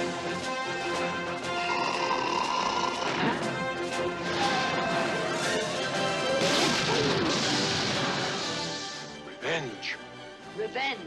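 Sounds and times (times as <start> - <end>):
orchestral trailer music: 0.0 - 11.0
crash and impact effects: 4.2 - 9.0.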